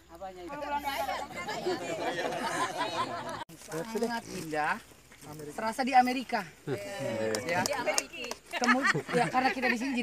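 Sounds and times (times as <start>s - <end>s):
people chatting: 0.1s - 10.0s.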